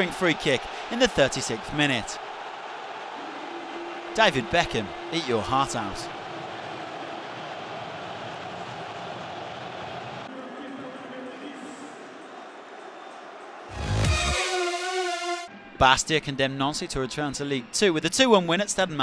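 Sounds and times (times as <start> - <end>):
stadium crowd din: 0.0 - 15.8
musical transition sting: 13.7 - 15.5.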